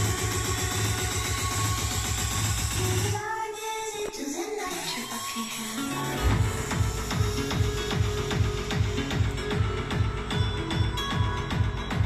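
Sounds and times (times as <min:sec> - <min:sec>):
heavy pulsing bass beat: 0:00.0 - 0:03.2, 0:06.0 - 0:12.0
song through speakers: 0:00.0 - 0:12.0.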